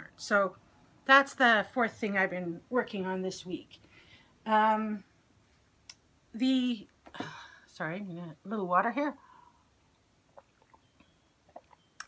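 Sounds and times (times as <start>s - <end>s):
person gulping water: 10.2s - 12.0s.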